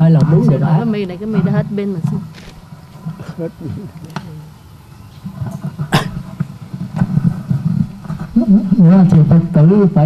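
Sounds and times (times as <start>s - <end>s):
low uneven rumble: 0.0s - 10.0s
microphone handling noise: 5.1s - 9.6s.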